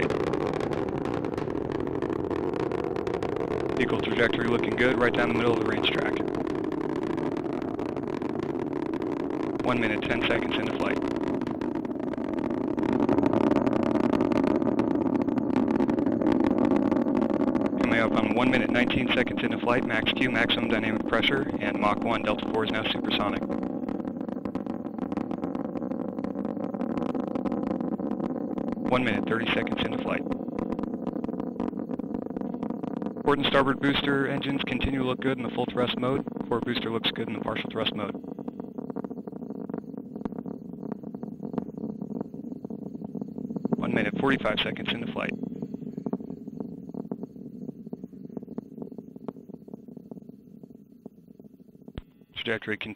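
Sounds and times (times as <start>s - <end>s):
rocket engines roaring: 0.0s - 52.9s.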